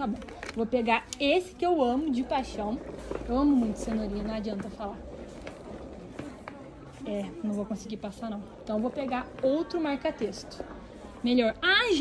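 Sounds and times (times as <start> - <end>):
shoppers chattering: 0.0 - 12.0.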